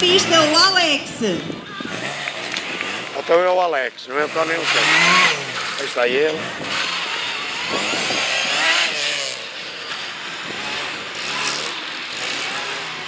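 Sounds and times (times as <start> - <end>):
car engine revving: 0.0 - 13.0.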